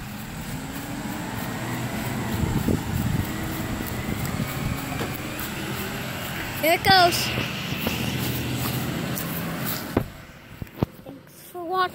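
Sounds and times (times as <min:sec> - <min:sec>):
garbage truck engine rumbling: 0:00.0 - 0:11.9.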